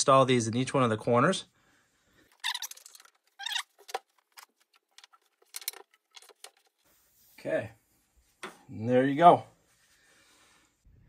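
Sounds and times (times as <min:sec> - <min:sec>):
wooden blocks clicking and scraping: 0:02.2 - 0:06.8.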